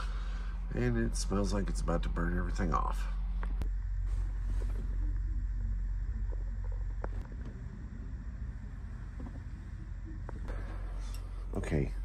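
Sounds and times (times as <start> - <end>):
heater humming: 0.0 - 12.0.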